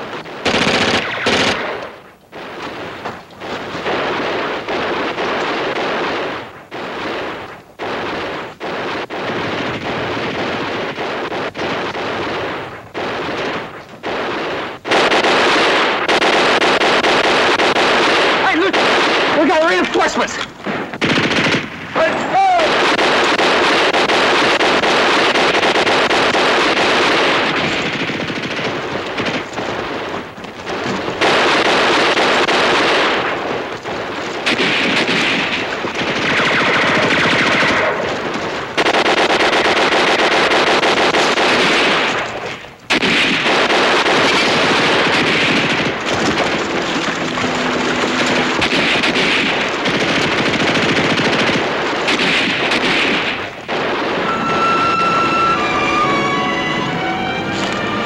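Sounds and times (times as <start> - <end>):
gunshots: 0.0 - 58.0
machine-gun fire: 0.0 - 58.0.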